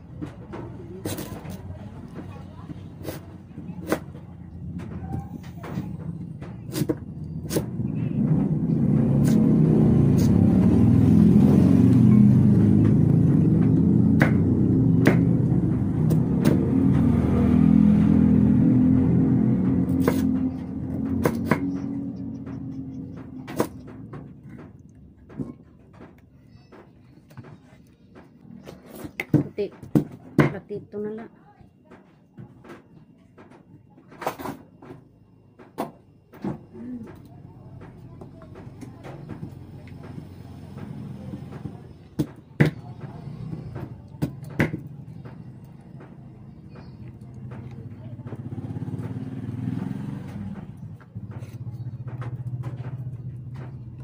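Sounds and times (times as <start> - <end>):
loud low rumble: 4.4 - 25.1
knife chopping on wooden board: 13.6 - 15.4, 19.7 - 21.9, 23.2 - 24.0, 41.5 - 45.4.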